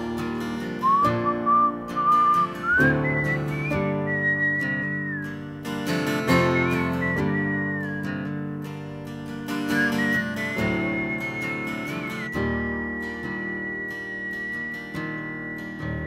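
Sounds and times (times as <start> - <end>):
strummed acoustic guitar: 0.0 - 16.0
whistled melody: 0.7 - 8.4, 9.5 - 16.0.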